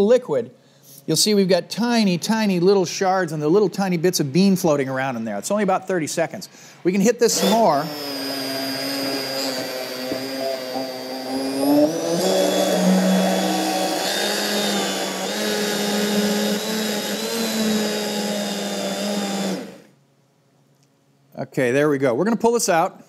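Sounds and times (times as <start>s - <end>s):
immersion blender whining: 7.2s - 20.0s.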